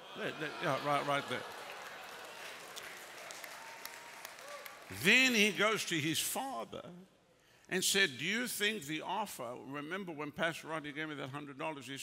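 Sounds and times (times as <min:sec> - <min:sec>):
faint scattered applause: 0:00.0 - 0:05.6.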